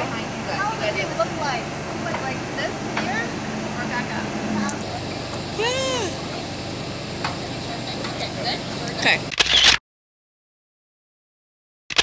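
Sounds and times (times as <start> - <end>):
high rising and falling call: 0.0 - 7.2
voices murmuring and calling out: 0.0 - 9.3
steady background noise: 0.0 - 9.4.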